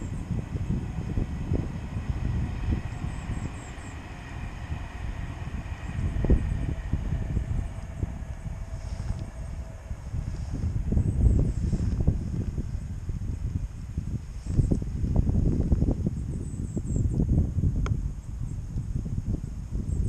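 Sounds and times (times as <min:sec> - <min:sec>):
wind buffeting microphone: 0:00.0 - 0:20.0.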